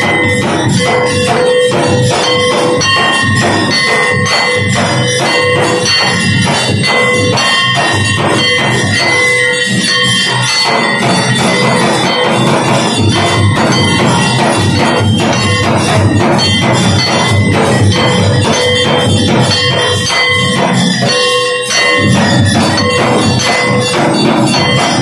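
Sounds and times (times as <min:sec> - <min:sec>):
hand bell ringing: 0:00.0 - 0:25.0.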